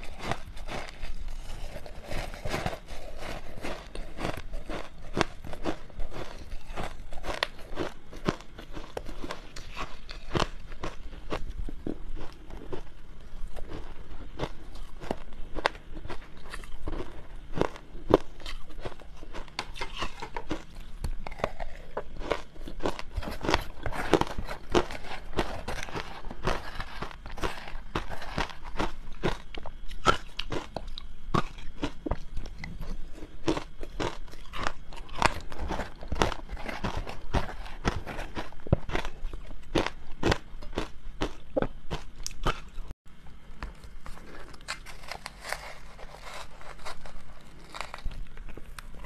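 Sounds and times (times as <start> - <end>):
ice being chewed and crunched: 0.0 - 43.0, 43.6 - 49.0.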